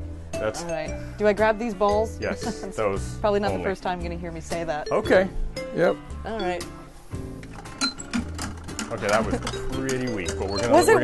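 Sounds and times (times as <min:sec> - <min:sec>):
background music: 0:00.0 - 0:11.0
prize wheel clicking rapidly: 0:07.5 - 0:11.0.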